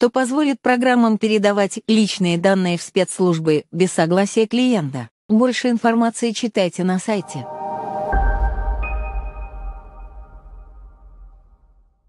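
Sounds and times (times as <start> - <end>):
sustained electronic chord: 7.2 - 11.7
deep low rumble: 7.6 - 11.8.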